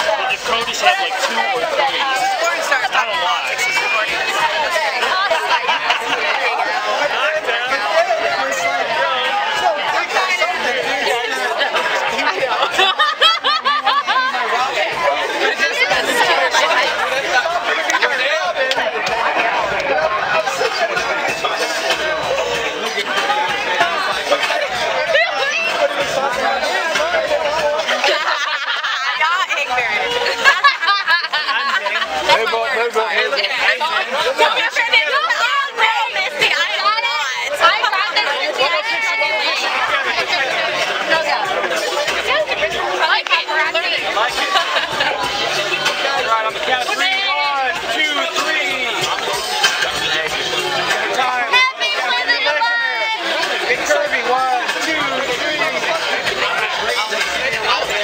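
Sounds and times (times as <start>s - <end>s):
babble of many voices: 0.0s - 58.0s
people talking over one another: 0.0s - 58.0s.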